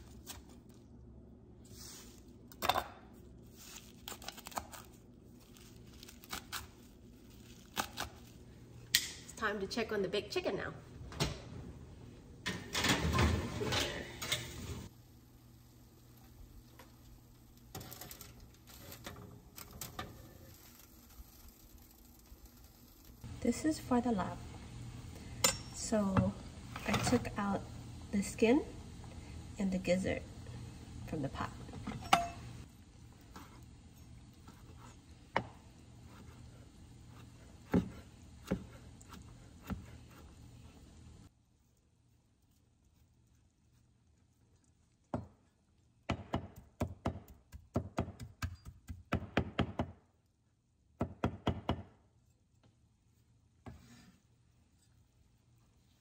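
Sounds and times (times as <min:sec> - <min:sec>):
low steady hum: 0:00.0 - 0:46.1
aluminium foil crinkling: 0:03.4 - 0:08.5, 0:15.9 - 0:23.2
oven door and rack clattering: 0:12.4 - 0:14.9.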